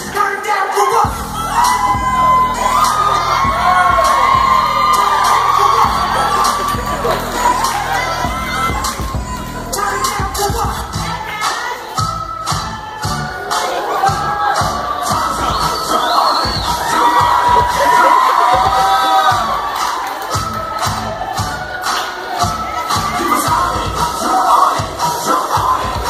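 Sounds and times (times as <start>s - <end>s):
crowd cheering and shouting: 0.0s - 26.0s
dance music with steady beat: 1.0s - 26.0s.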